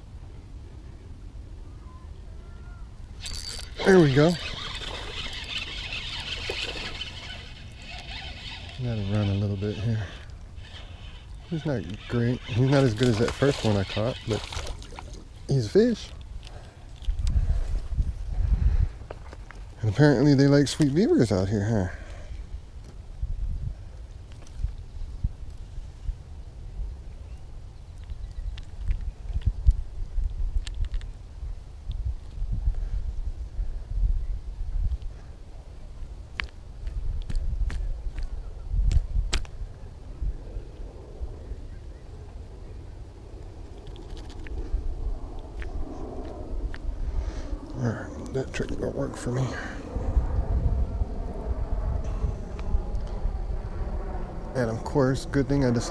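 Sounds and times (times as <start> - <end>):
low wind rumble: 0.0 - 55.9.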